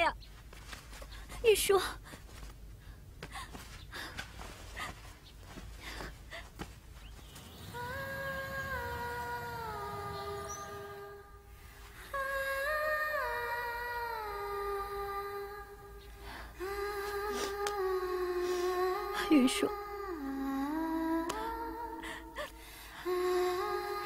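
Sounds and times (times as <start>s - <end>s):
woman humming a melody: 7.6s - 11.3s, 16.6s - 24.0s.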